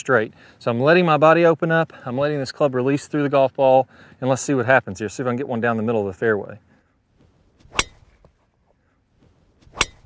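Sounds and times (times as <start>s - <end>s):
golf club striking ball: 7.6s - 8.3s, 9.6s - 10.0s.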